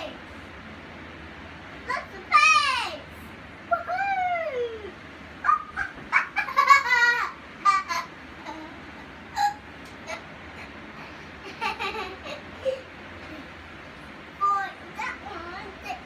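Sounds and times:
child laughing: 3.7s - 13.5s.

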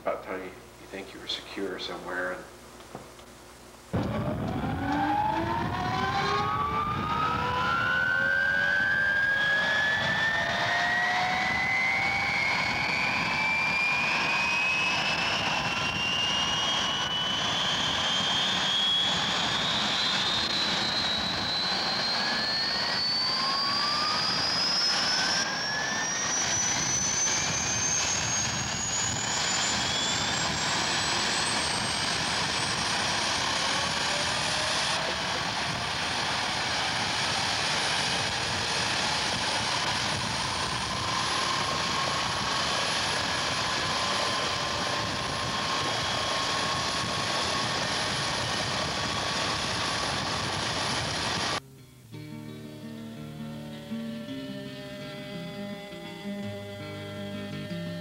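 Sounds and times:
helicopter turbine whine: 0.0s - 2.7s, 3.5s - 51.6s, 52.8s - 58.0s
rushing engine roar: 4.0s - 51.6s.

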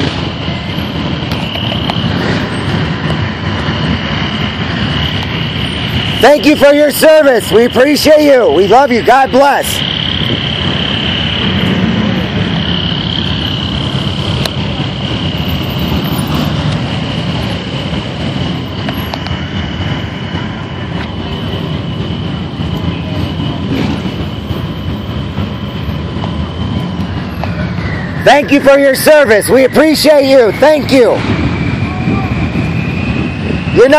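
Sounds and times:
vehicle engine and road rumble: 0.0s - 33.9s.

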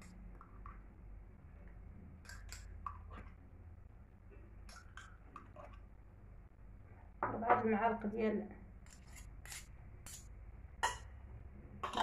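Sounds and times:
spoon scraping glass jar: 8.8s - 11.0s.

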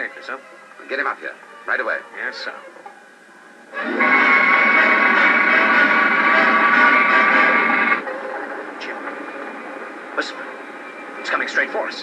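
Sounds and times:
jet engine roar with whining: 3.8s - 12.0s.

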